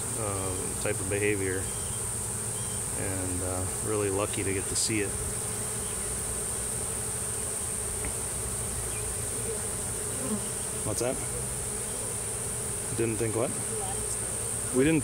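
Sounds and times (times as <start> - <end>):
bees buzzing: 0.0 - 15.0.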